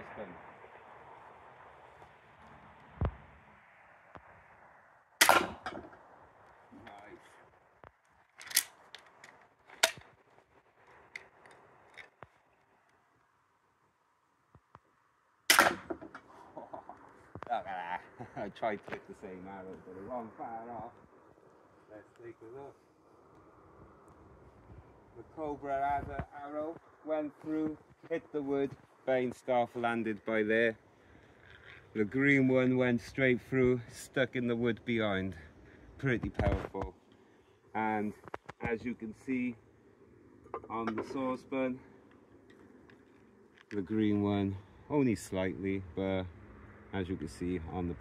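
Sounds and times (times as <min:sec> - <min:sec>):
crossbow bolts piercing a metal pan: 0:05.2 - 0:05.8, 0:15.5 - 0:16.0.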